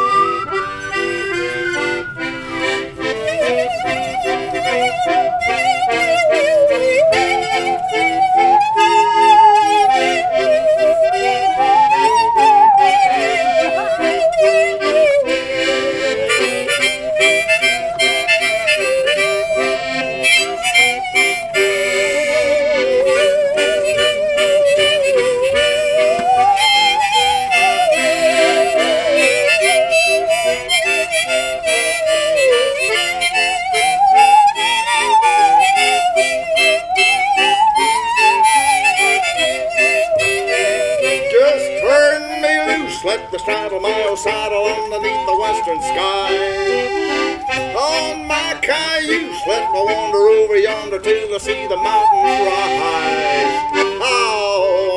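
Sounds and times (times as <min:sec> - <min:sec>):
accordion chords: 0:00.0 - 0:54.9
bowed musical saw melody: 0:00.0 - 0:54.9
harmonica: 0:00.0 - 0:54.9.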